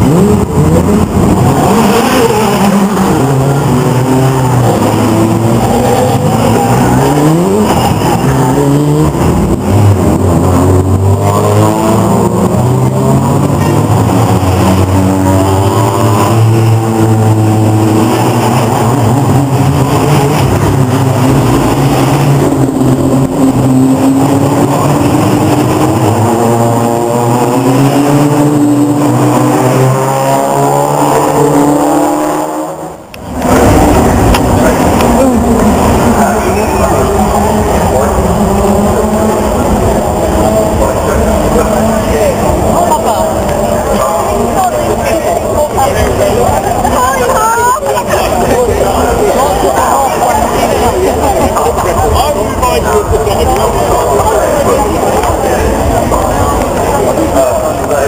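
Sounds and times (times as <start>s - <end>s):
racing car engines passing: 0.0s - 58.0s.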